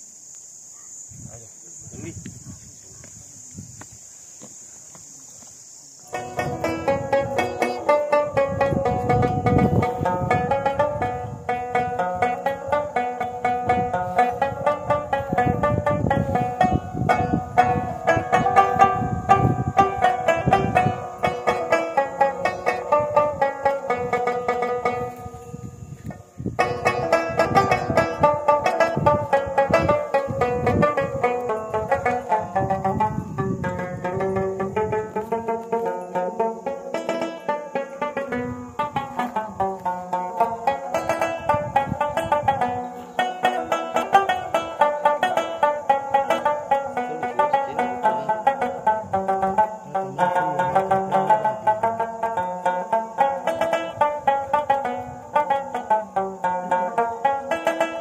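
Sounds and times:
plucked rubab melody: 6.0s - 58.0s.

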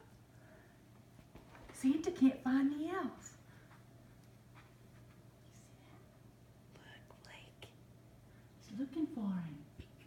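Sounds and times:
faint whispering: 5.4s - 6.2s, 6.8s - 7.8s.

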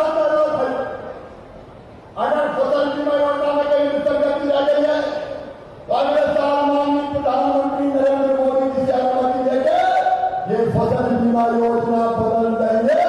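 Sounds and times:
man chanting drawn-out calls: 2.2s - 13.0s.

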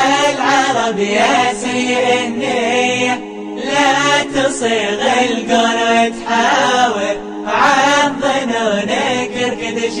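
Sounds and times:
ornamented vocal line: 0.0s - 10.0s.

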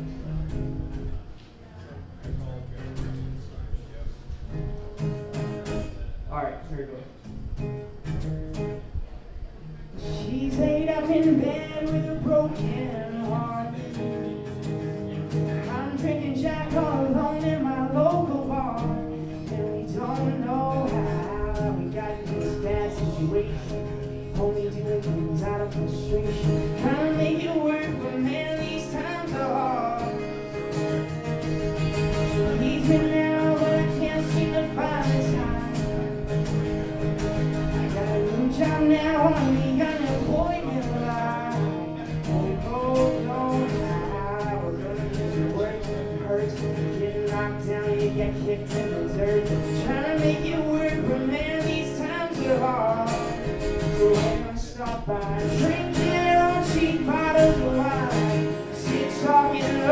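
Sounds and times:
acoustic guitars playing: 0.0s - 59.9s
man singing: 9.9s - 36.6s, 37.2s - 59.9s.

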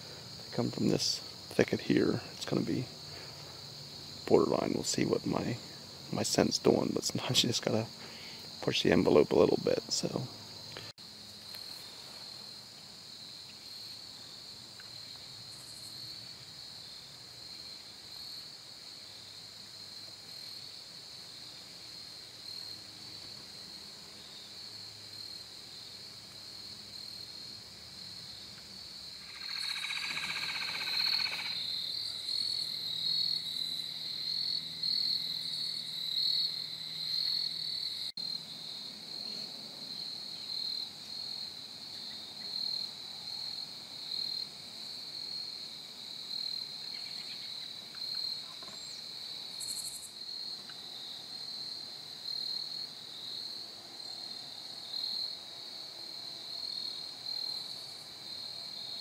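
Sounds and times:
crickets trilling: 0.0s - 59.0s
separate insect call: 0.0s - 59.0s.

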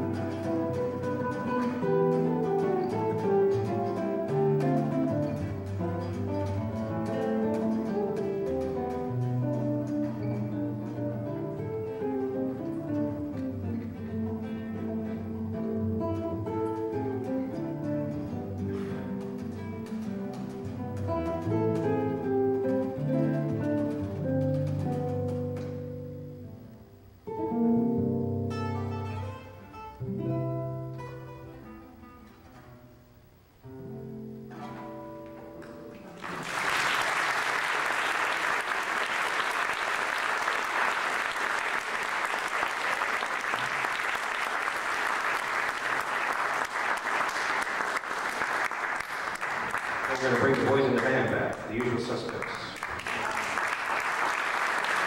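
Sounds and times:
acoustic guitars playing jazz: 0.0s - 55.0s
audience applause: 36.0s - 55.0s.

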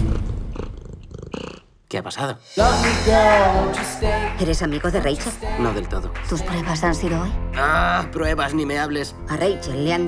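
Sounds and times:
cat purring: 0.0s - 1.7s.

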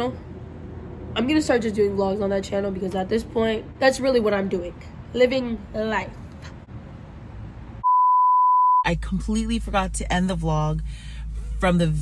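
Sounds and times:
high-pitched electronic beep: 7.8s - 8.9s.

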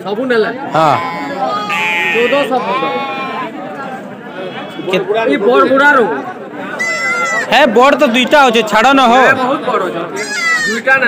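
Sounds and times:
men's voices: 0.0s - 6.7s
lamb bleating: 1.0s - 3.4s.

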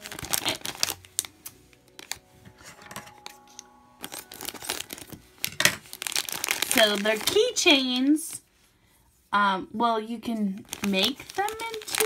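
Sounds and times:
plastic wrapper crinkling: 0.0s - 8.4s, 10.4s - 12.0s.

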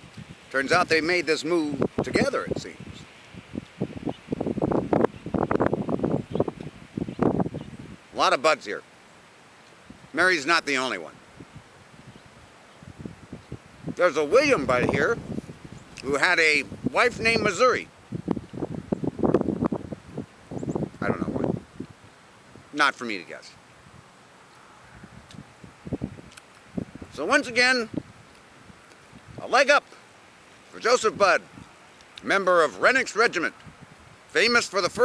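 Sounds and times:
crackling rustle: 0.0s - 8.2s, 8.8s - 34.8s
wind noise on microphone: 0.0s - 8.8s, 9.8s - 29.8s, 30.7s - 35.0s.

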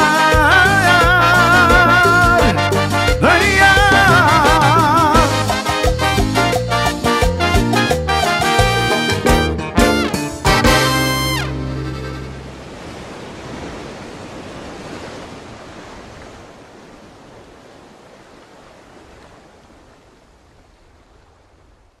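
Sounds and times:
ocean surf washing on shore: 11.8s - 22.0s.

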